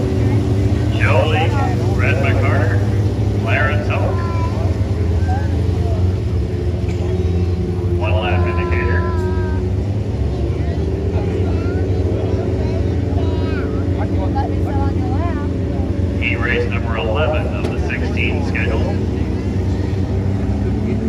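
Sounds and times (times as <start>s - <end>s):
faint voices: 0.0s - 21.0s
race car engines droning: 0.0s - 21.0s.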